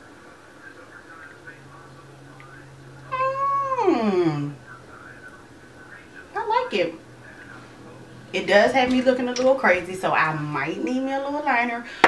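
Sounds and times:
woman's high wordless vocal: 3.1s - 4.6s.

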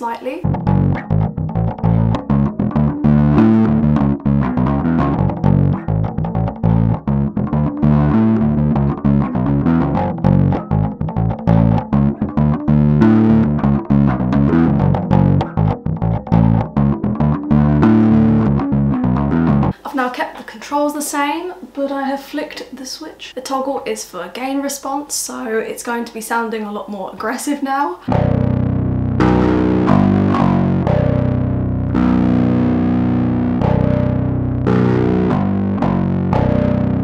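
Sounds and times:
distorted bass guitar riff: 0.4s - 19.8s, 28.1s - 37.0s.

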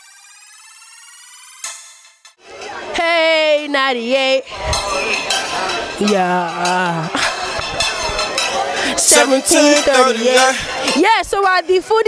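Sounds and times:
rising synth tone: 0.0s - 2.1s.

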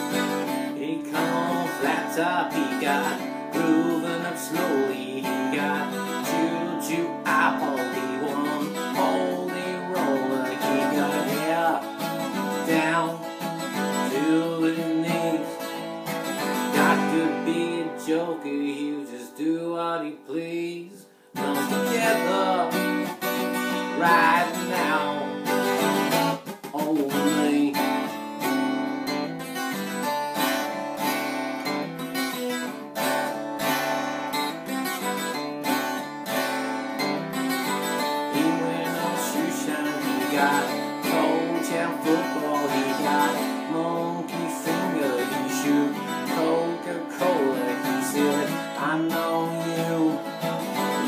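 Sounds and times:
acoustic guitar strumming: 0.0s - 51.0s.

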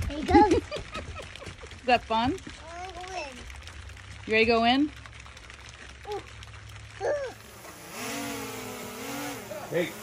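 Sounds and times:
drone buzzing hum: 7.4s - 10.0s.

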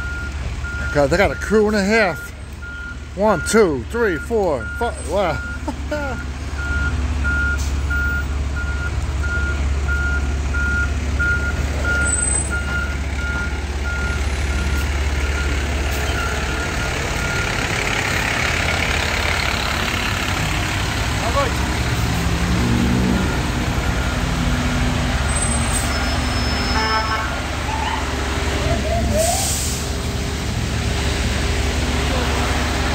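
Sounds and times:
truck reverse alarm beeping: 0.0s - 19.1s, 22.5s - 29.8s
diesel engine rumbling: 0.0s - 32.9s.

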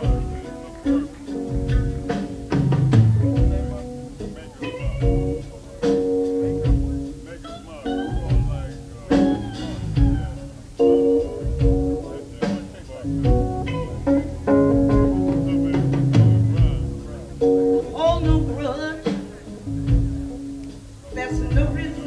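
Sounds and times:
bass guitar: 0.0s - 22.0s
drums: 0.0s - 22.0s
electric guitar lines: 0.0s - 22.0s.

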